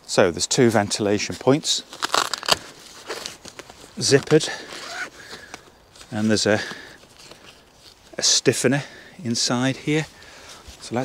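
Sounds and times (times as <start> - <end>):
nylon tent fabric rustling: 0.1 - 11.0.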